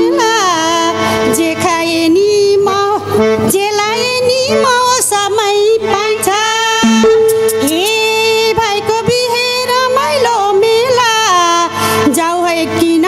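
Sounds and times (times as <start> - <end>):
band accompaniment through loudspeakers: 0.0 - 13.0
woman singing: 0.0 - 13.0.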